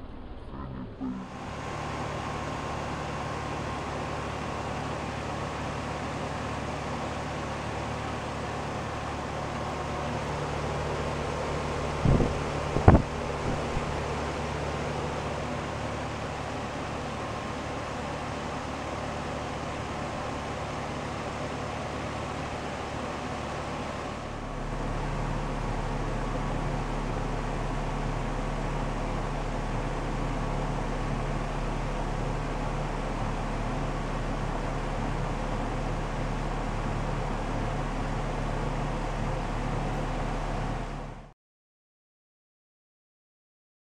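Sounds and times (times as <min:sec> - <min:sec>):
faint high tone: 0:00.4 - 0:01.5
air conditioner unit humming: 0:00.6 - 0:41.3.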